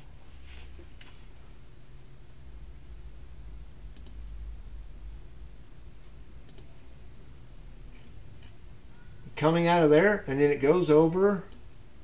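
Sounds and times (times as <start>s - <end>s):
low steady hum: 0.0s - 12.0s
computer mouse clicks: 3.9s - 4.2s, 6.4s - 6.7s.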